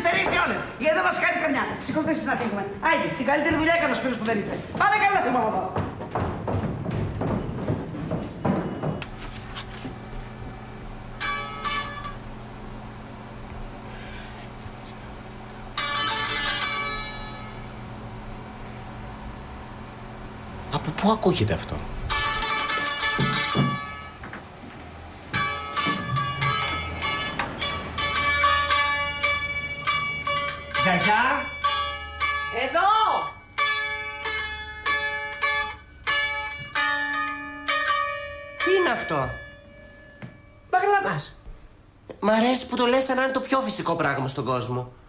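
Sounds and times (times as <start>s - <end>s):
lute chord strummed: 11.1s - 12.6s, 15.7s - 18.0s, 22.1s - 24.2s, 25.3s - 40.8s.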